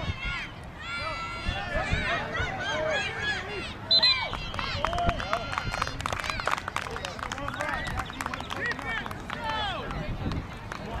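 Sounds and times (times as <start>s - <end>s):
spectators shouting and cheering: 0.0s - 11.0s
people clapping: 4.2s - 11.0s.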